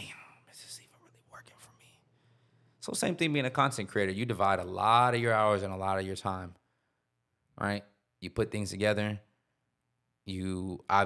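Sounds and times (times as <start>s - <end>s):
whispered voice: 0.0s - 2.1s.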